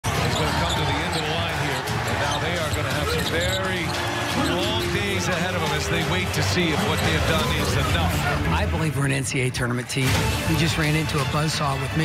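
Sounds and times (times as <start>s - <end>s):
basketball court sounds: 0.0s - 8.2s.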